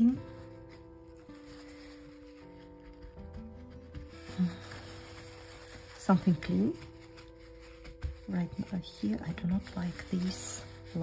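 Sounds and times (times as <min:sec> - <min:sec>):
soft held-note background music: 0:00.0 - 0:11.0.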